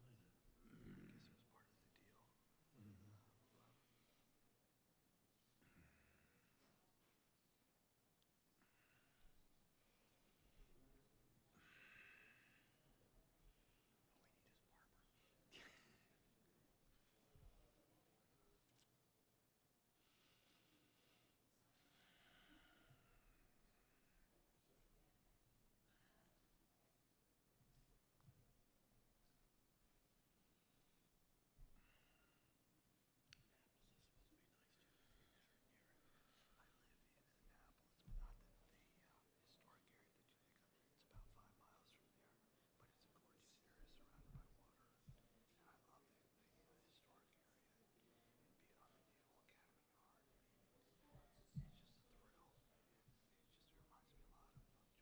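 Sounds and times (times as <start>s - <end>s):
hushed talk: 0.0s - 4.0s, 33.3s - 55.0s
faint whispered speech: 0.0s - 4.5s, 8.5s - 19.2s, 19.9s - 28.4s, 31.6s - 55.0s.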